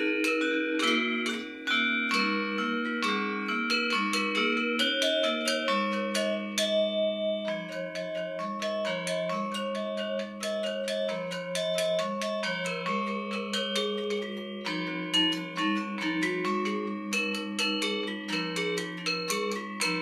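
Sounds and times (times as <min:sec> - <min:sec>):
gamelan music on metallophones: 0:00.0 - 0:20.0.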